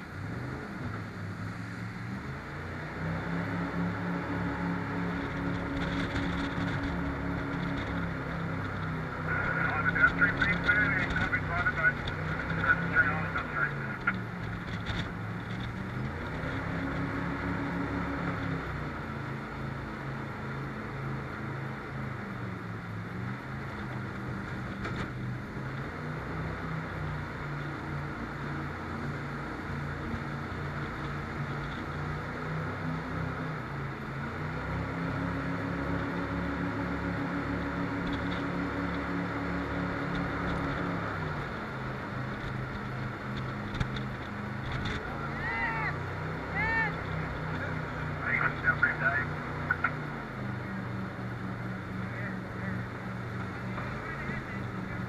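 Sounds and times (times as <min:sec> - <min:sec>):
jet boat engine: 0:00.0 - 0:55.0.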